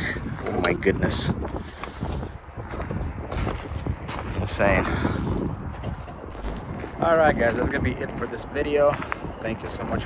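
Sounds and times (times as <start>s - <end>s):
wind rumbling on microphone: 0.0s - 10.0s
footsteps crunching on gravel: 1.5s - 10.0s.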